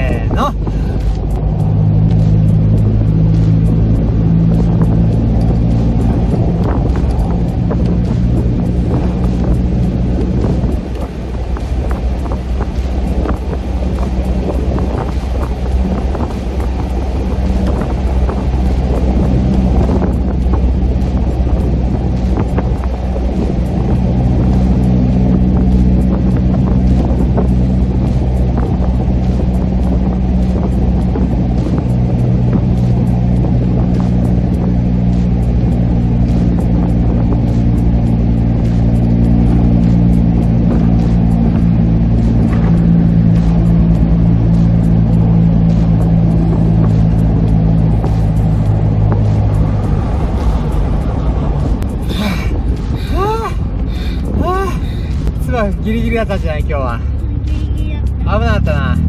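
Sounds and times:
car engine droning in tunnel: 0.0s - 59.0s.

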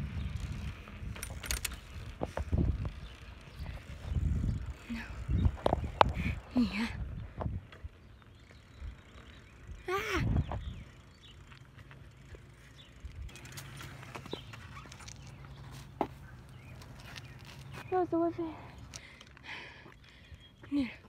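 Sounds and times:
bicycle riding noise: 0.0s - 21.0s.

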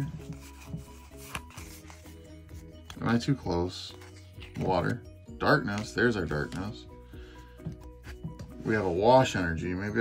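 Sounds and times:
cards sliding and rubbing: 0.0s - 3.0s
faint background music: 0.0s - 10.0s.

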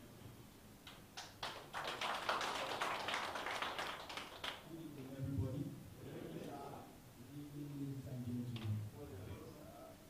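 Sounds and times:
audience applause: 1.4s - 4.7s.

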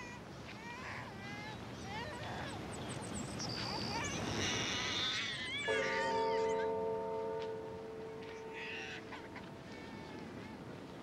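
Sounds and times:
sustained musical chord: 5.7s - 9.2s.

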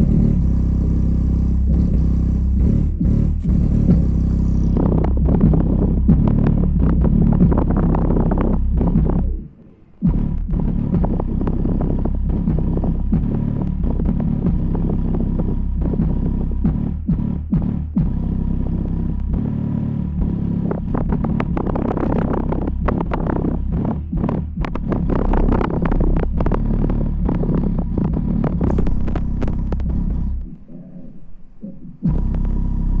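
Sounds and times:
subwoofer deep bass rumble: 0.0s - 33.0s
rapid crackling clicks: 20.2s - 30.6s.

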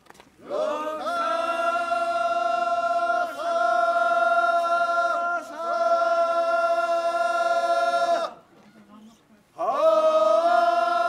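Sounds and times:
group of voices chanting: 0.4s - 8.4s, 9.6s - 11.0s.

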